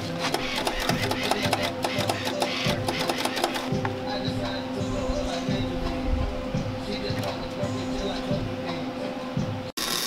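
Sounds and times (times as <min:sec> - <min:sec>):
welder drive motor clicking: 0:00.0 - 0:03.7
background music: 0:00.0 - 0:10.0.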